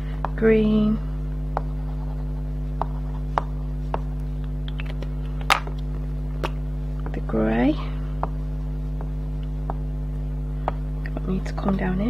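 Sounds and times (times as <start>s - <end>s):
low electrical hum: 0.0s - 12.0s
crayon tapping and clicking on card: 2.8s - 4.1s.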